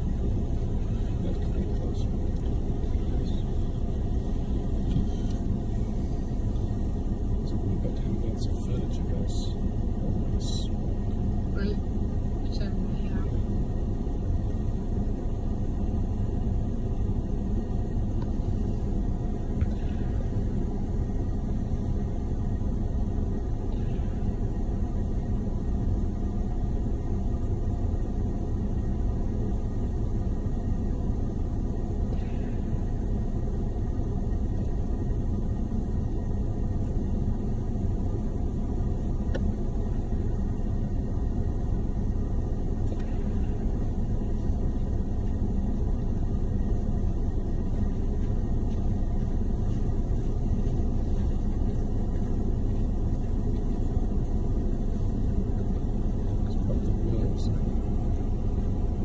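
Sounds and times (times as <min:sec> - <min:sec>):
vehicles idling: 0:00.0 - 0:59.0.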